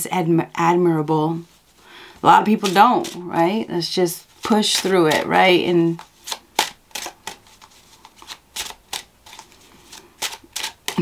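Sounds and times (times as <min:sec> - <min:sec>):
cards snapping and rustling: 0:02.6 - 0:03.2, 0:04.4 - 0:11.0.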